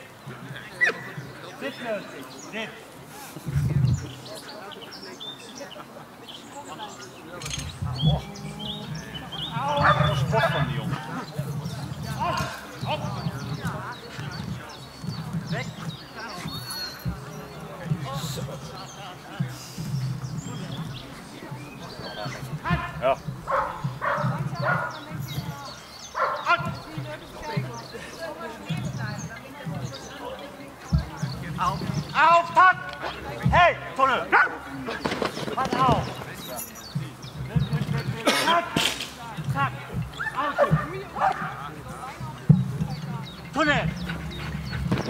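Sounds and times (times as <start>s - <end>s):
dog barking excitedly: 23.5s - 24.9s, 26.2s - 26.6s.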